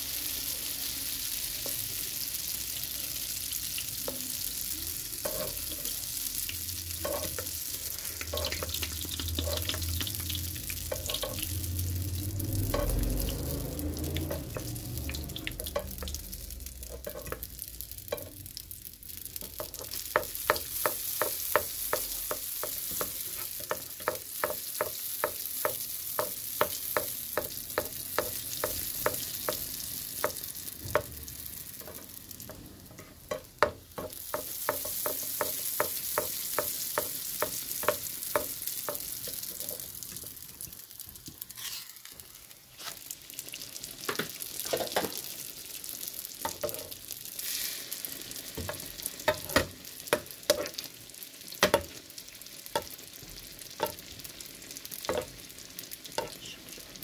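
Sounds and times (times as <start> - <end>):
dough sizzling in hot oil: 0.0 - 57.0
wooden spatula tapping: 10.9 - 11.5, 19.4 - 31.2, 31.8 - 39.6.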